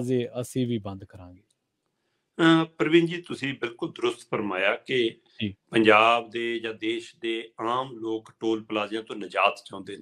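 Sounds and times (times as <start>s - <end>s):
man speaking over remote link: 0.0s - 1.3s, 2.4s - 10.0s.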